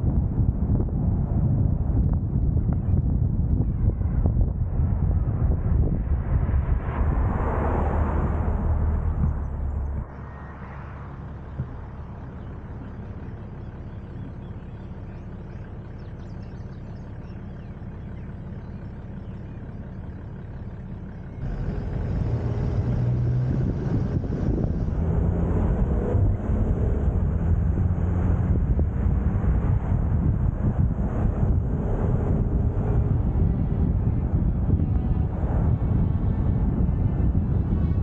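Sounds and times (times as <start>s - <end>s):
wind and tyre rush: 0.0s - 13.8s, 21.4s - 38.0s
car engine at road speed: 0.0s - 38.0s.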